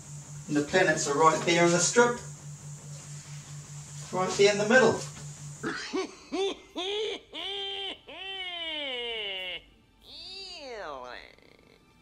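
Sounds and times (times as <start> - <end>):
man making cat-like call: 8.4 - 11.6.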